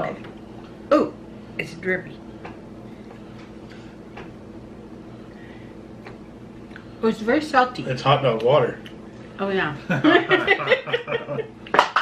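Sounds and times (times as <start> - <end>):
steady low hum: 0.0 - 12.0.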